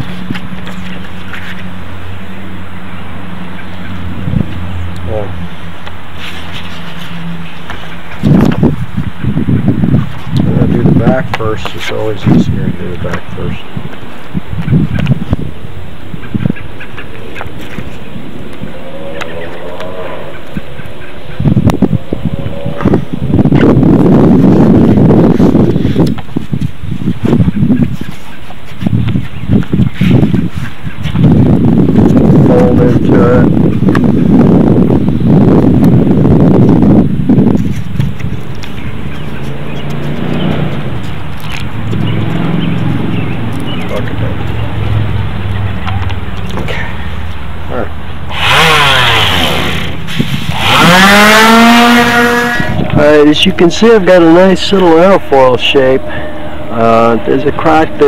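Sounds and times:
sandpaper crinkling and rustling: 6.1 - 8.0.

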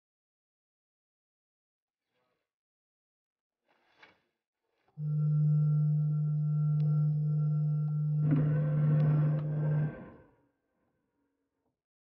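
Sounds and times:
ct scanner humming: 5.0 - 9.9.

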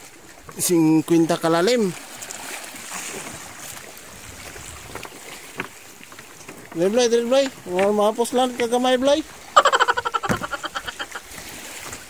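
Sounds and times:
water splashing against boat hulls: 0.0 - 12.0.

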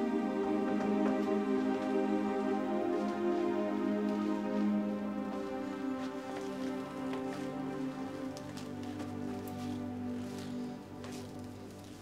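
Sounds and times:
soft sustained chord music: 0.0 - 12.0.

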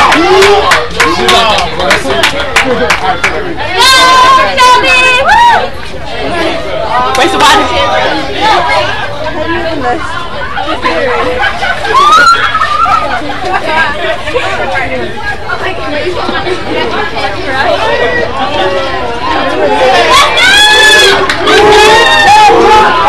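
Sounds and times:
babble of spectators talking: 0.0 - 23.0
loud shouts: 3.6 - 5.8, 11.9 - 13.1, 19.0 - 23.0.

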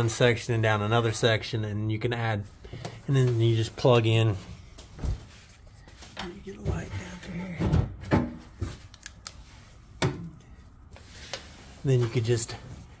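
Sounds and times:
handling knocks and clunks: 6.2 - 8.9.

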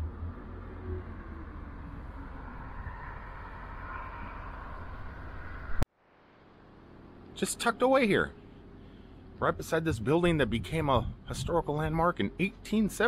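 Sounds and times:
road traffic passing: 0.0 - 5.8.

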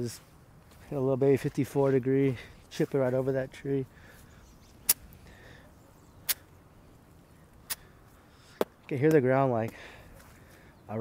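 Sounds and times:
faint outdoor hiss: 0.0 - 11.0.

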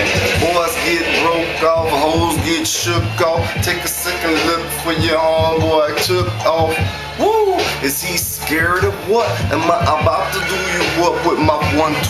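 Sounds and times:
hip-hop beat: 0.0 - 12.0
man rapping: 0.0 - 12.0.

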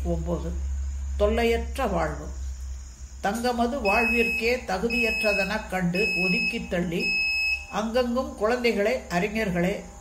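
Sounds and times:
low steady hum: 0.0 - 10.0
high electronic tone: 3.8 - 10.0.

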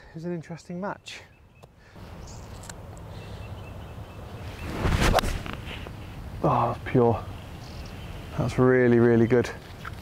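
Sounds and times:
golf club swing rush: 4.6 - 5.9.

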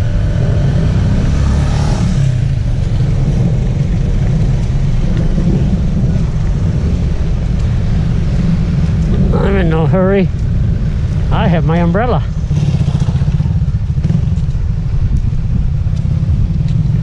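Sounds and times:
low street rumble: 0.0 - 17.0.

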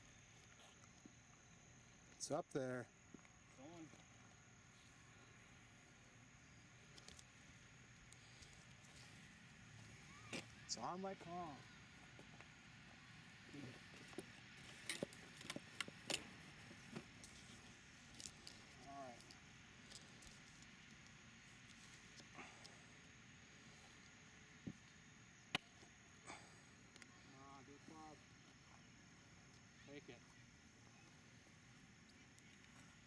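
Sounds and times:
quiet outdoor ambience: 0.0 - 33.0.

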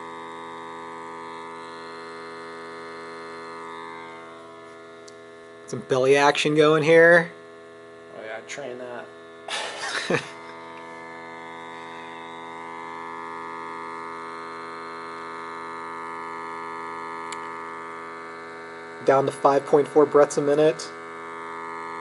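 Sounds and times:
steady electrical hum: 0.0 - 22.0.

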